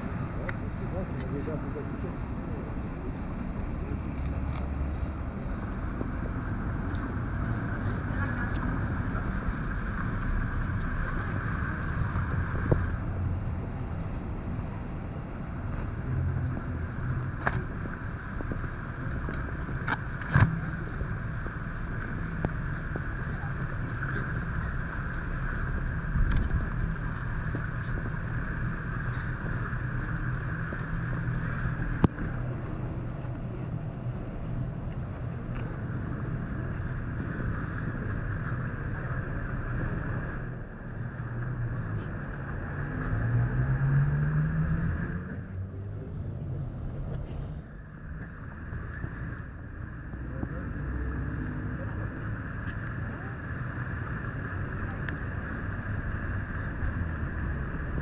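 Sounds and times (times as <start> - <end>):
street traffic rumble: 0.0 - 58.0
vehicle engine rising in pitch: 41.2 - 58.0.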